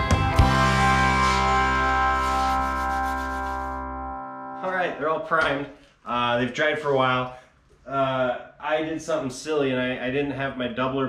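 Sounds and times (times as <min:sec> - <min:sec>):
background music chord: 0:00.0 - 0:05.2
man talking: 0:04.6 - 0:11.0.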